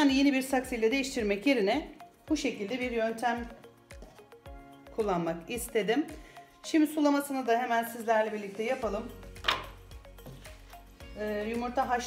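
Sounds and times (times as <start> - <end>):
soft background music: 0.0 - 12.0
plastic pot knocking on wooden table: 9.4 - 10.4.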